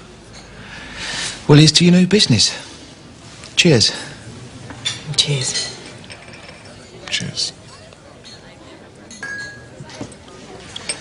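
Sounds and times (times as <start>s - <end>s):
tableware clinking: 0.2s - 0.6s, 4.6s - 11.0s
wine glasses clinking: 4.8s - 7.2s, 8.2s - 11.0s.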